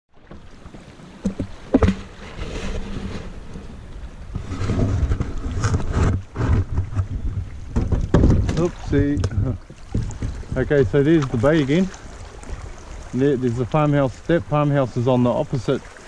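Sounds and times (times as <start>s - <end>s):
paddle strokes in water: 0.1s - 16.0s
wind buffeting microphone: 0.6s - 14.6s
sharp knocks on hull: 1.2s - 2.4s, 5.0s - 11.6s.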